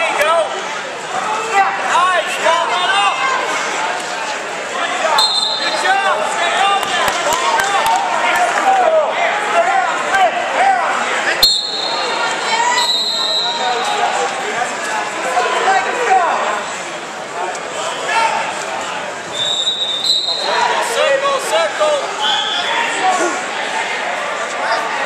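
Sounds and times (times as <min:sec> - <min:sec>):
murmur of crowd: 0:00.0 - 0:25.0
short high whistle blasts: 0:05.2 - 0:05.7, 0:19.3 - 0:20.5.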